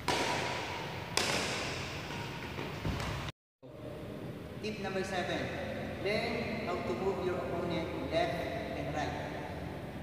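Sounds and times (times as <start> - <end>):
racket hitting shuttlecock: 0.0 - 3.3.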